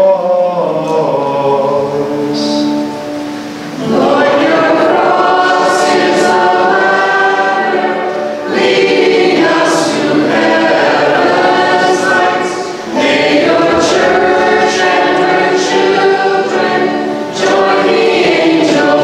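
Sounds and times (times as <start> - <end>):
group singing a hymn: 0.0 - 19.0.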